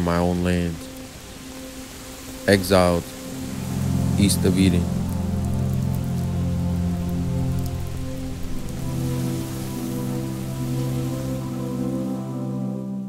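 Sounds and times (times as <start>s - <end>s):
music of held low chords: 0.0s - 13.0s
steady rain falling: 0.0s - 13.0s.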